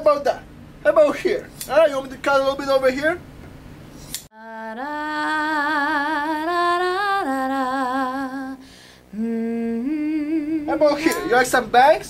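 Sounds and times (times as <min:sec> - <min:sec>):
woman singing with vibrato: 0:04.3 - 0:11.6.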